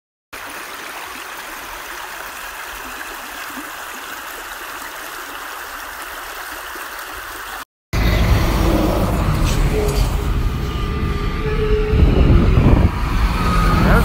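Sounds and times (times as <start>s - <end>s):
creek flowing over rocks: 0.3s - 7.7s.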